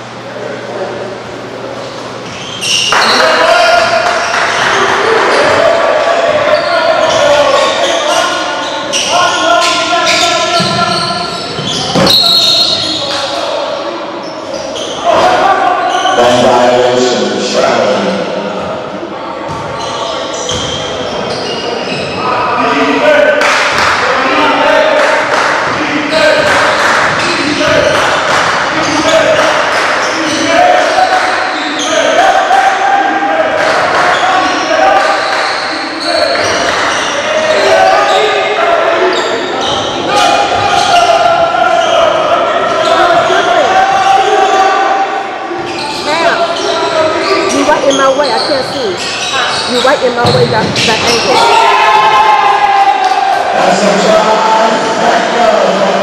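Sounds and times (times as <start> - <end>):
echoing voices: 0.0 - 56.0
basketball dribbling on hardwood: 50.2 - 50.8.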